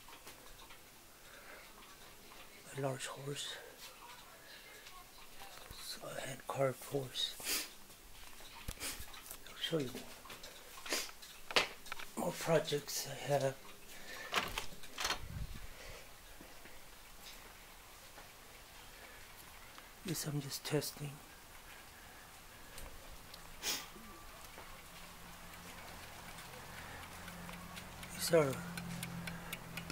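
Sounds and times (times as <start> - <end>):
mechanical clocks ticking: 24.8 - 29.9.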